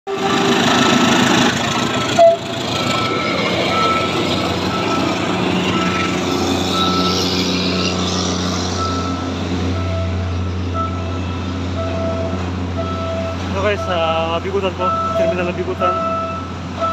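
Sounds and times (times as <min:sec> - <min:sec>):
diesel locomotive engine drone: 0:00.1 - 0:16.9
train cars rumbling over rails: 0:00.1 - 0:16.9.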